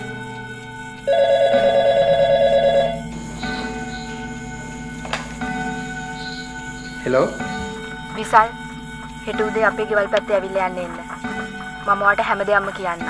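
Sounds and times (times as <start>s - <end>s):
soft background music: 0.0s - 13.0s
telephone ringing: 1.0s - 8.6s.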